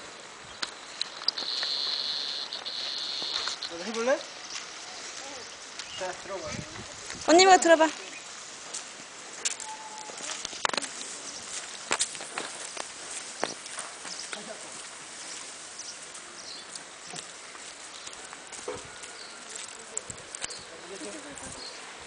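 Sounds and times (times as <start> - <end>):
footsteps on dirt path: 0.0 - 21.9
outdoor background noise: 0.0 - 22.0.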